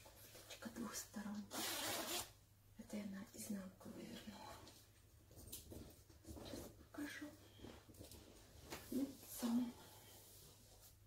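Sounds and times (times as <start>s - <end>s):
sweatshirt zipper unzipping: 1.5s - 2.4s.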